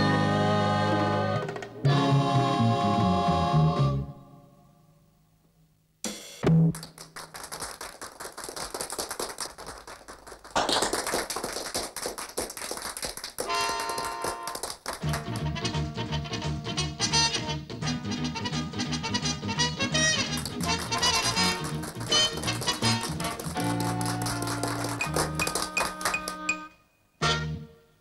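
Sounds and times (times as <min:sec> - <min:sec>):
lively music: 0:00.0 - 0:04.2, 0:13.4 - 0:27.8
audience applause and cheering: 0:06.8 - 0:15.5, 0:19.9 - 0:26.6
band with guitars and double bass: 0:15.0 - 0:26.6.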